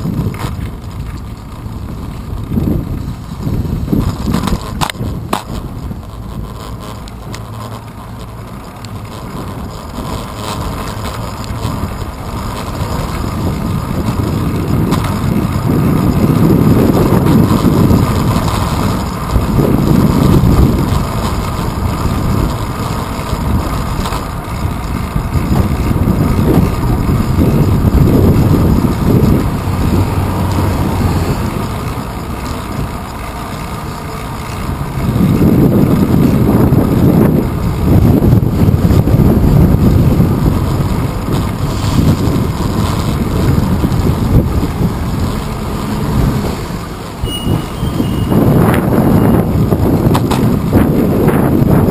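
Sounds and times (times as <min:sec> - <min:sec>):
road and traffic hum: 0:00.0 - 0:51.9
wind rumbling over microphone: 0:00.0 - 0:51.9.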